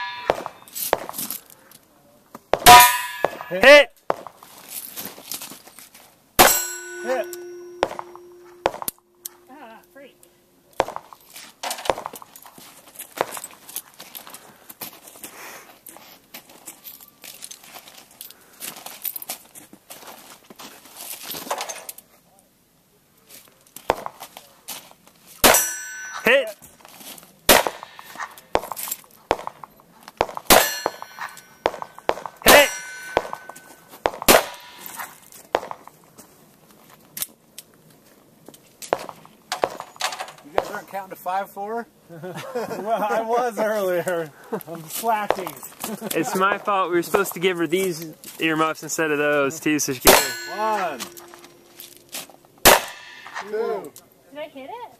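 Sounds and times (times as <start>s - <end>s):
handgun shots: 0.0s - 1.1s, 6.4s - 9.0s, 27.5s - 29.5s, 30.2s - 35.8s, 50.1s - 50.5s, 52.6s - 53.4s
steel plate clanging: 0.0s - 1.2s, 2.6s - 3.7s, 6.4s - 9.5s, 25.4s - 26.6s, 27.5s - 28.8s, 30.5s - 35.3s, 49.9s - 53.5s.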